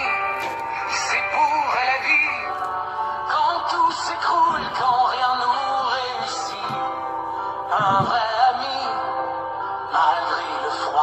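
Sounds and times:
song with instrumental accompaniment: 0.0s - 11.0s.

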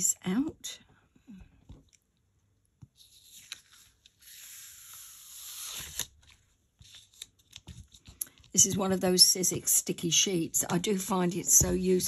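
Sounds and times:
cardstock peeling off sticky sheet: 3.3s - 7.6s.

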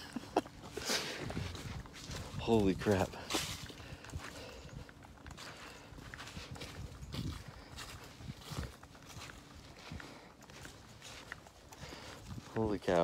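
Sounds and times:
footsteps on dry leaves: 0.1s - 13.0s.

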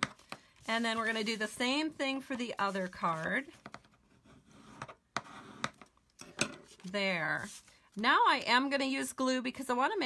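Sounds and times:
bone folder rubbing paper: 0.6s - 3.5s.

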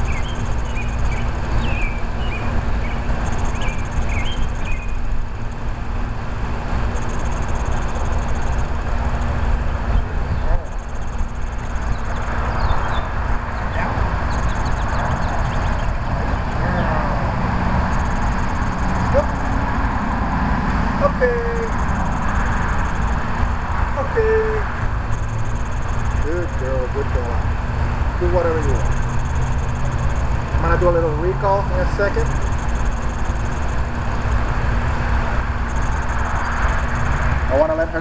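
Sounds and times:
low outdoor rumble: 0.0s - 38.0s.

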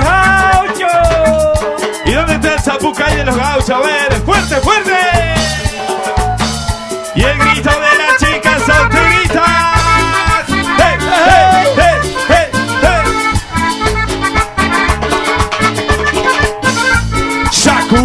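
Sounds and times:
band playing dance music: 0.0s - 18.0s.

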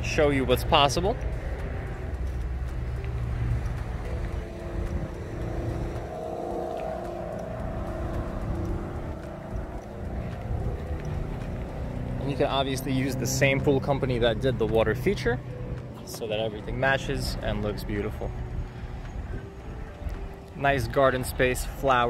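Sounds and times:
faint distant engine hum: 0.0s - 20.5s
low rumble: 0.0s - 20.6s.

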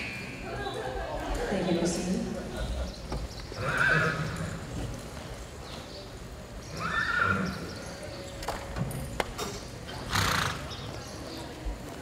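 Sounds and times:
horse whinnying: 3.6s - 4.6s, 6.7s - 7.6s, 10.0s - 10.7s.

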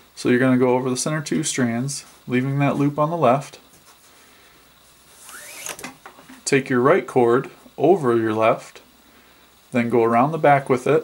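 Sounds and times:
cord rubbing rustle: 4.8s - 6.5s
brief rising squeak: 5.2s - 5.8s.

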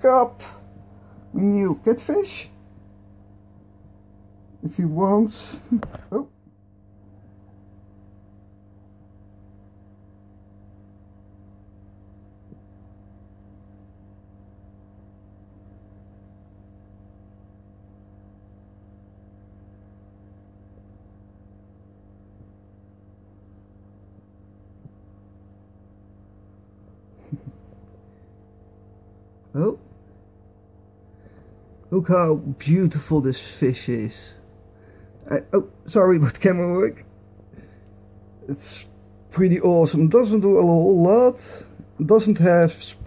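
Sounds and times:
low electrical hum: 0.0s - 43.0s.

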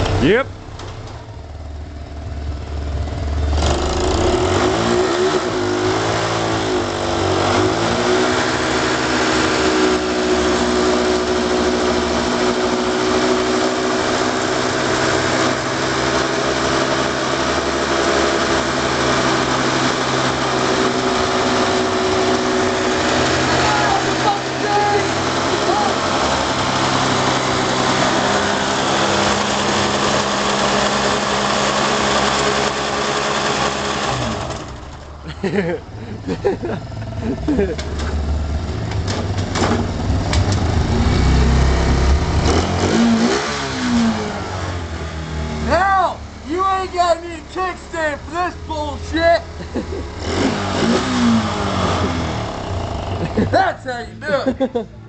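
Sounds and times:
small engine revving hard: 3.5s - 34.9s, 40.6s - 45.7s, 50.2s - 53.5s.

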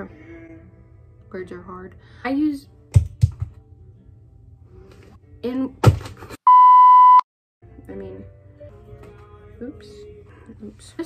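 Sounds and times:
censor bleep: 6.5s - 7.3s.

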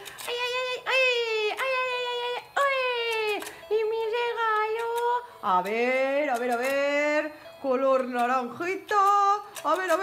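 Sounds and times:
electronic toy melody: 0.0s - 10.0s.

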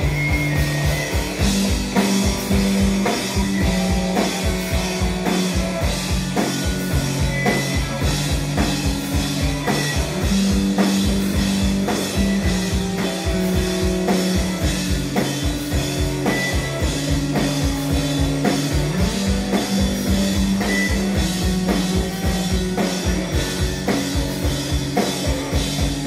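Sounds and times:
drum kit beat: 0.0s - 26.0s
electric guitar chords: 0.0s - 26.0s.

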